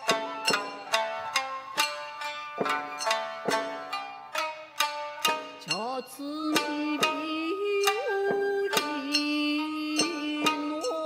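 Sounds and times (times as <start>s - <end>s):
shamisen plucked in sharp strokes: 0.0s - 11.0s
woman singing long held notes: 5.6s - 11.0s.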